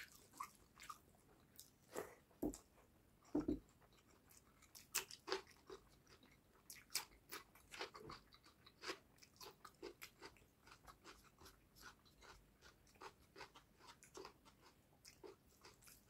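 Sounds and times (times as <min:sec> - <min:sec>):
chewing mouth sounds: 0:00.0 - 0:02.7, 0:03.8 - 0:16.0.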